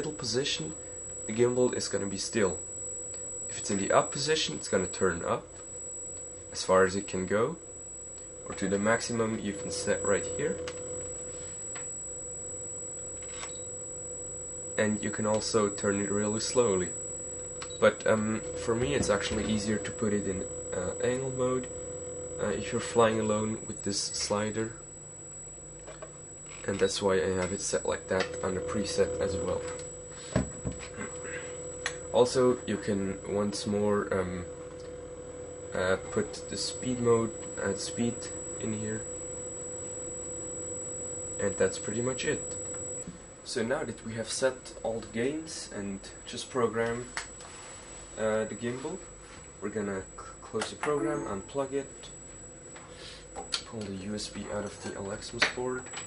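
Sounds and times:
background hiss: 0:00.0 - 0:34.9, 0:35.5 - 0:56.0
steady electronic tone: 0:00.0 - 0:44.4, 0:45.4 - 0:56.0.

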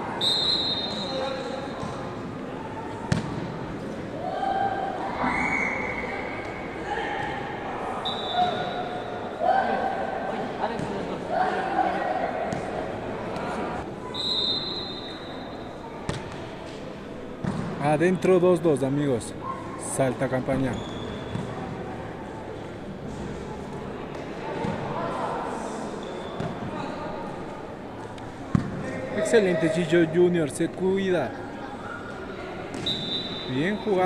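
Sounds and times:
voices in hall: 0:00.0 - 0:34.0.

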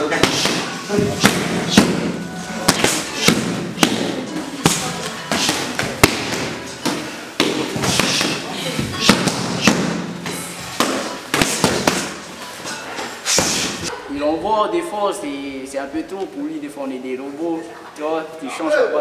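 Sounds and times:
punches and kicks hitting pads: 0:00.1 - 0:02.1, 0:02.7 - 0:12.2.

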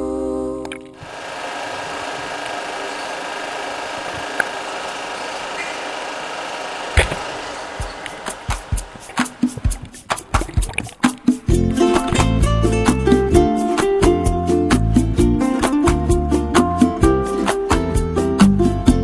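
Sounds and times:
rhythmic strumming: 0:06.9 - 0:19.0
song playing: 0:07.8 - 0:18.9
underwater recording hiss: 0:07.9 - 0:10.6.

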